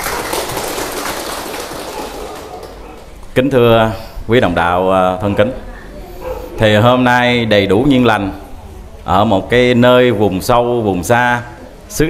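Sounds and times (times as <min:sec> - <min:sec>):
audience applauding: 0:00.0 - 0:03.4.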